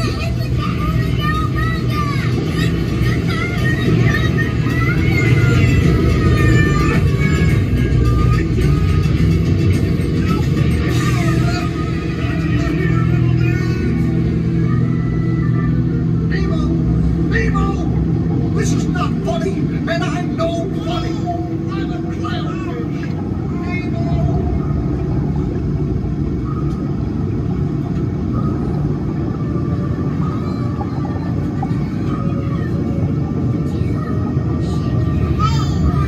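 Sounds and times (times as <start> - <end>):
music: 0.0 - 21.8
low rumble of ride cabin: 0.0 - 36.0
people's voices: 0.0 - 36.0.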